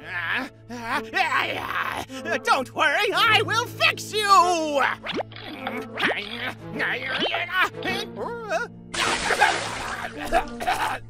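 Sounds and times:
background music: 0.0s - 11.0s
cartoon water spray: 9.0s - 10.3s
character spluttering: 9.0s - 10.6s.

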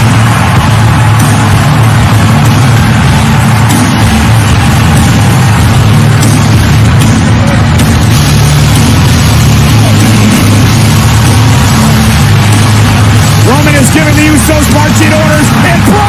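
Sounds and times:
arena crowd noise: 0.0s - 16.0s
heavy bass-driven entrance music: 0.0s - 16.0s.

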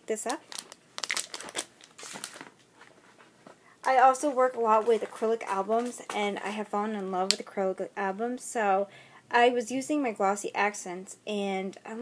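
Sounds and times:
plastic bag crinkling: 0.2s - 3.0s.

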